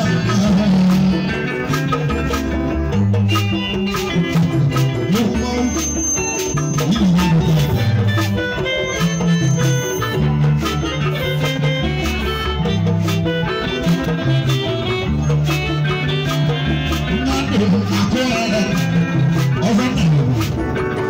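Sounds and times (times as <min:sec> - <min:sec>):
deep bass line: 0:00.0 - 0:21.0
melodic instrument notes: 0:00.0 - 0:21.0
steady percussion: 0:00.0 - 0:21.0.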